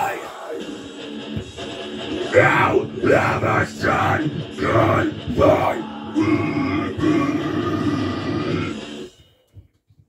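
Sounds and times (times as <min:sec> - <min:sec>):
growled metal scream: 0:02.2 - 0:09.1.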